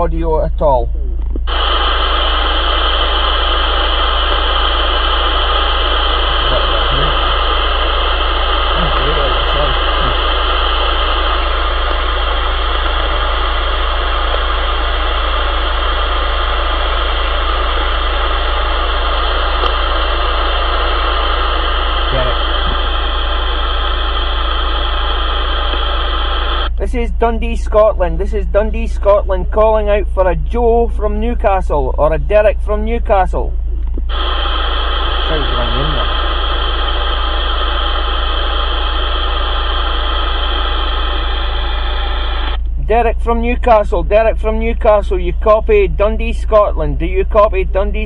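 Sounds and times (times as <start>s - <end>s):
low hum: 0.0s - 48.0s
steady radio tones: 0.0s - 48.0s
radio static rush: 1.1s - 48.0s.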